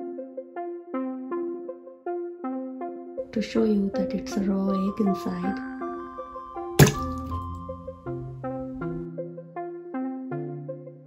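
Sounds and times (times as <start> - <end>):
piano-like background music: 0.0 - 11.0
egg splatting on a plate: 6.8 - 7.6.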